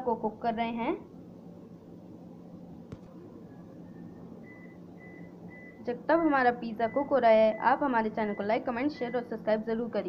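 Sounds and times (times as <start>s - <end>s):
steady low hum: 0.0s - 10.0s
microwave keypad beeps: 4.4s - 5.8s.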